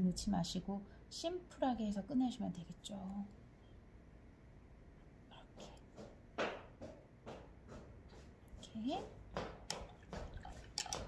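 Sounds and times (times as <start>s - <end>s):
faint tool clicks and taps: 9.4s - 11.0s.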